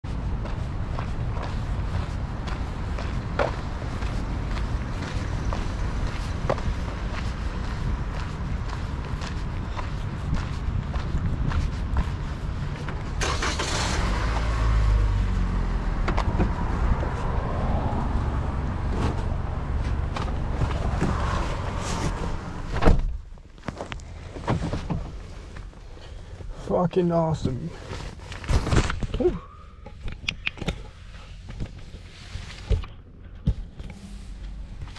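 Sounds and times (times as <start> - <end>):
footsteps on sidewalk: 0.0 - 34.9
low street rumble: 0.0 - 34.9
car passing: 0.1 - 22.9
car door shutting: 22.0 - 23.2.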